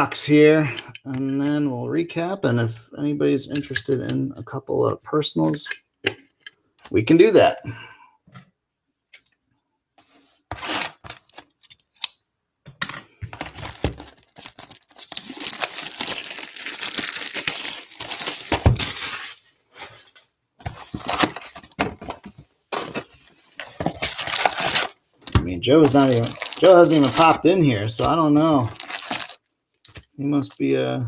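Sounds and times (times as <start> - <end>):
packaging rustling: 10.4 - 12.0, 13.3 - 25.0, 25.8 - 30.8
packaging crinkling and tearing: 10.5 - 11.9, 13.3 - 19.5, 23.6 - 25.0, 25.8 - 27.4, 28.0 - 30.8.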